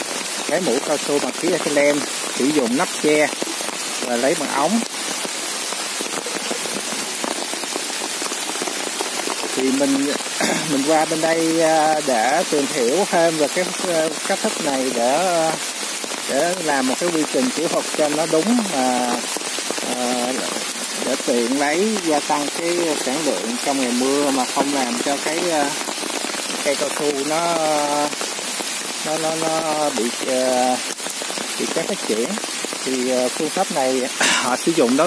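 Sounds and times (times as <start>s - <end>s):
rain falling on trees: 0.0s - 35.0s
man hesitating vocally: 34.2s - 34.6s.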